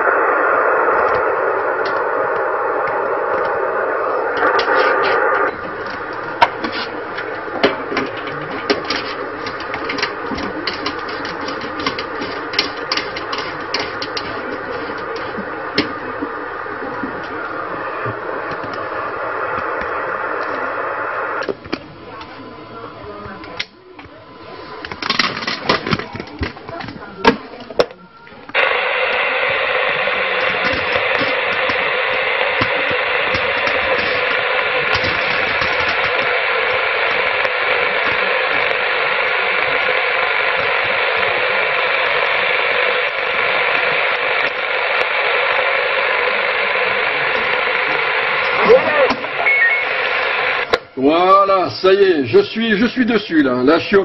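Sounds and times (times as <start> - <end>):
radio crackle and clicks: 0.0 - 54.0
radio hiss: 0.0 - 54.0.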